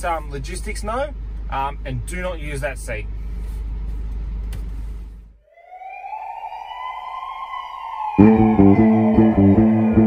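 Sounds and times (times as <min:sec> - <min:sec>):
siren wail: 0:05.4 - 0:10.0.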